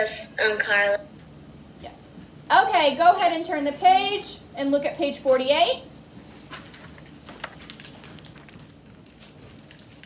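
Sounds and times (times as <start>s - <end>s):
textbook pages turning: 6.4s - 10.0s.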